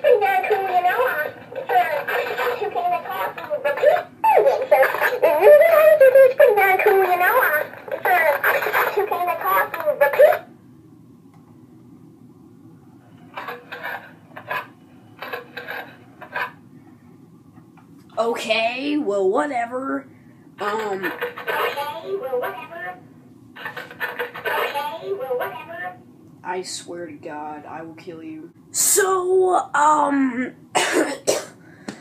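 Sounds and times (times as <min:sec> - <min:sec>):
talking toy voice playback: 0:00.0 - 0:10.5, 0:20.6 - 0:23.0, 0:23.6 - 0:26.0.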